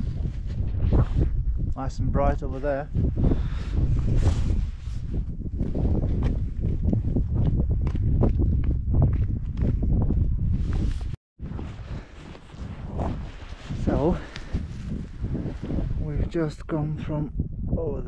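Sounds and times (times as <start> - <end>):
wind buffeting microphone: 0.0 - 18.0
footsteps on rocky path: 5.1 - 15.5.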